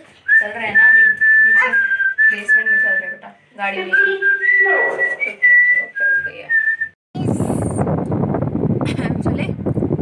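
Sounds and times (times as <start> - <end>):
person whistling a tune: 0.3 - 3.2, 3.8 - 7.0.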